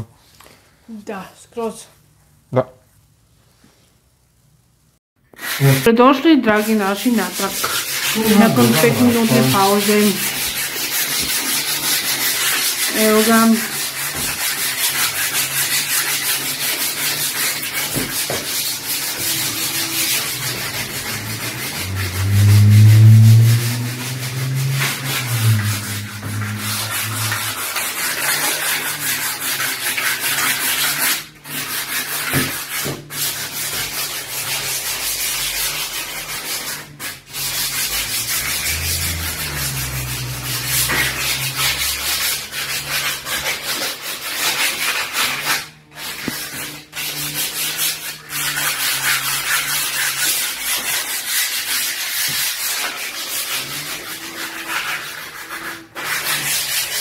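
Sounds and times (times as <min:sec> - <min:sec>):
sandpaper scratching wood: 0:05.3 - 0:57.0
low humming tone: 0:19.0 - 0:28.2, 0:37.6 - 0:42.6.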